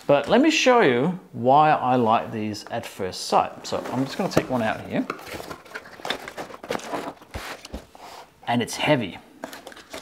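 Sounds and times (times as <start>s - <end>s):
cardboard and packaging handled: 3.6s - 8.3s, 9.4s - 10.0s.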